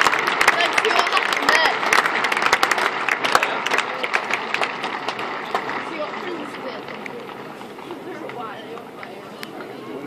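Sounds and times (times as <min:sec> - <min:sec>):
crowd clapping: 0:00.0 - 0:09.8.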